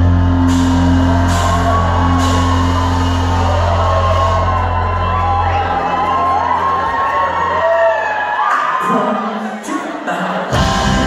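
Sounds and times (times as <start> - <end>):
live rock band: 0.0 - 6.5, 10.5 - 11.0
crowd whooping: 0.0 - 9.6.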